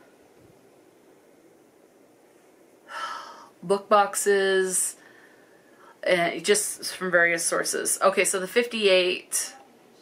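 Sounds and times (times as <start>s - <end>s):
woman breathing in: 2.9s - 3.6s, 5.0s - 6.0s
woman speaking: 2.9s - 5.0s, 6.0s - 9.7s.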